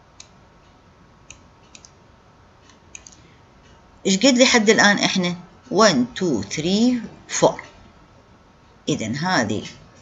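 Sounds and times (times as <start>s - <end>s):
low background hiss: 0.0s - 10.0s
computer mouse clicks: 0.1s - 2.0s, 2.6s - 3.8s.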